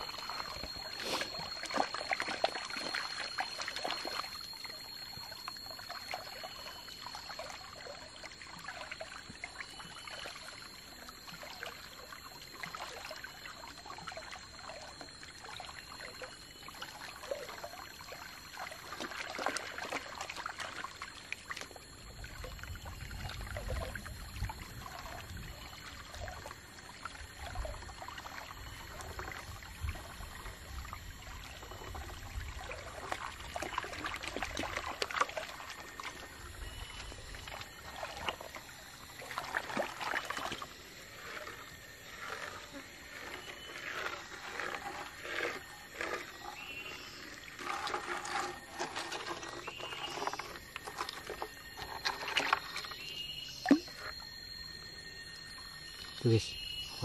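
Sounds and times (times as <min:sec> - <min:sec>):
water sloshing in a pan: 0:00.0 - 0:54.2.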